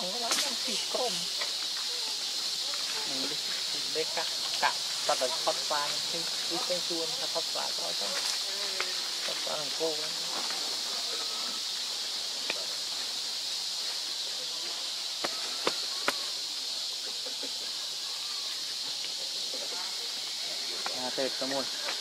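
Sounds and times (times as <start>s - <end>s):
forest insects droning: 0.0s - 22.0s.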